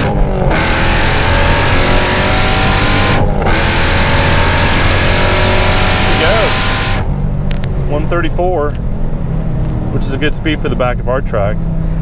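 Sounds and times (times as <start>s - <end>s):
car engine at full throttle: 0.0s - 12.0s.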